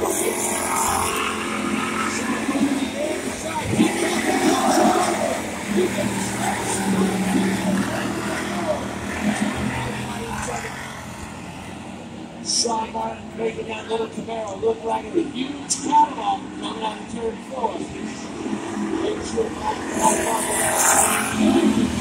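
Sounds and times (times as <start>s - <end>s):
race car engines: 0.0s - 22.0s.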